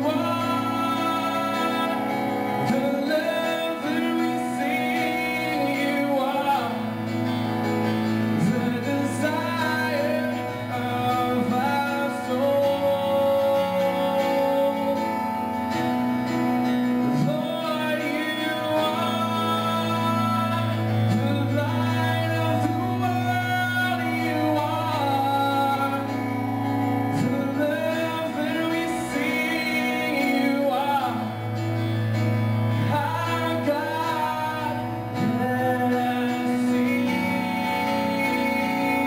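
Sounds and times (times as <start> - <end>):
keyboard chords: 0.0 - 39.0
man singing into microphone: 0.0 - 39.0.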